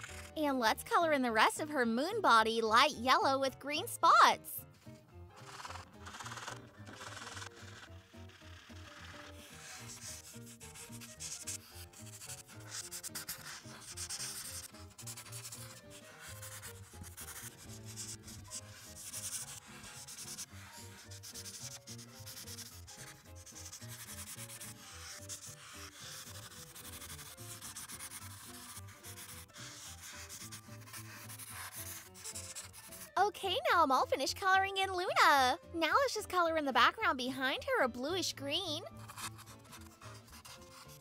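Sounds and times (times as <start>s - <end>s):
marker scratching on paper: 0.0s - 33.3s, 38.1s - 41.0s
faint background music: 0.0s - 41.0s.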